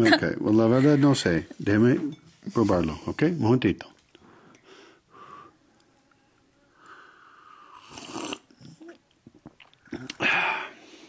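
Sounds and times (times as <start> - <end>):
man slurping hot tea: 7.7 - 8.8.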